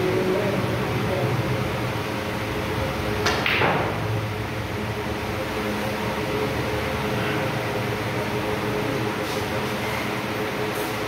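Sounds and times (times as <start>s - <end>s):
steady background hum: 0.0s - 11.0s
cue tip striking ball: 3.2s - 4.0s.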